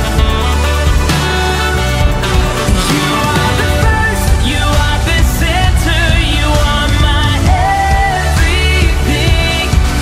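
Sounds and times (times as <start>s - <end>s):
live pop-rock band: 0.0s - 10.0s
singer holding long notes: 1.8s - 10.0s.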